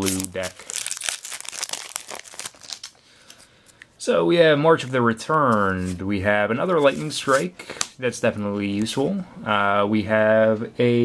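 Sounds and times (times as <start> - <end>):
foil wrapper crinkling: 0.0 - 3.8.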